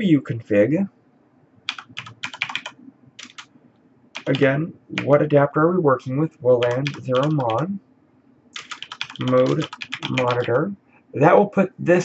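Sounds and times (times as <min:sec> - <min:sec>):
keyboard keystrokes: 0:01.7 - 0:03.5, 0:04.2 - 0:05.2, 0:06.6 - 0:07.6, 0:08.6 - 0:10.6.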